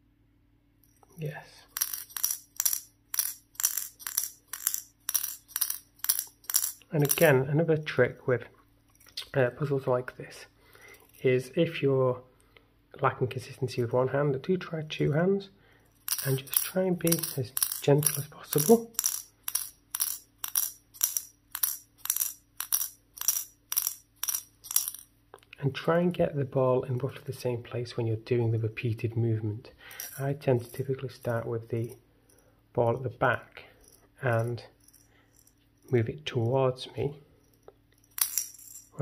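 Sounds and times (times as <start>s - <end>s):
steel ball clinking on metal: 0.8s - 7.4s, 16.0s - 25.1s, 37.4s - 39.0s
metallic clatter: 1.7s - 7.4s, 16.0s - 25.1s.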